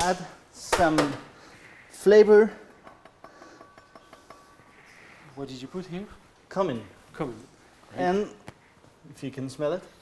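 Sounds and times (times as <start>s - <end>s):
glassware clinking: 2.8s - 4.7s.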